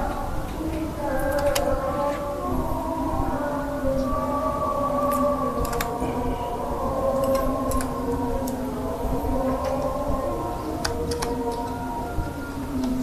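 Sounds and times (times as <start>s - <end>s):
steady hum of held tones: 0.0s - 13.0s.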